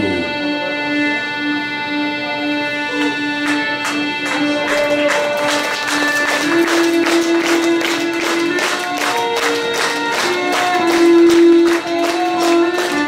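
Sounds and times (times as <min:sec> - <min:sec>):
violin slow melody: 0:00.0 - 0:13.0.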